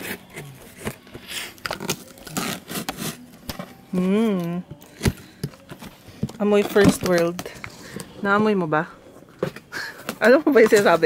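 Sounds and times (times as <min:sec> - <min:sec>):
plastic wrap and tape rustling: 0:00.0 - 0:08.0.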